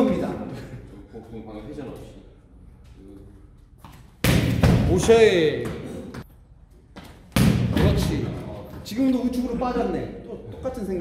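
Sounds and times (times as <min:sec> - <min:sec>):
ball kicked with echoing thud: 0:04.2 - 0:05.9, 0:07.3 - 0:08.3.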